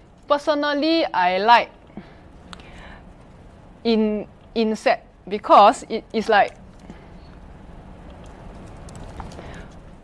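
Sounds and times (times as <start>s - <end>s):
low room hum: 0.0s - 10.0s
laptop keys tapping: 6.4s - 9.8s.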